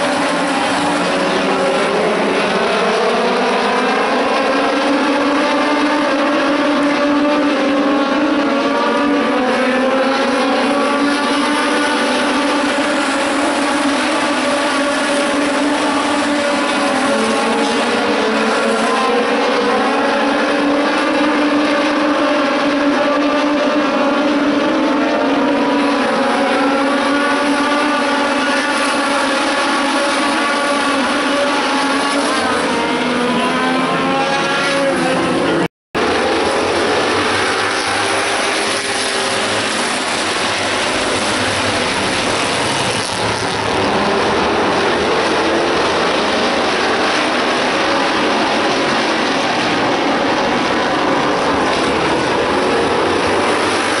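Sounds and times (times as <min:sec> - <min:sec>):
high-revving race car engines: 0:00.0 - 0:54.0.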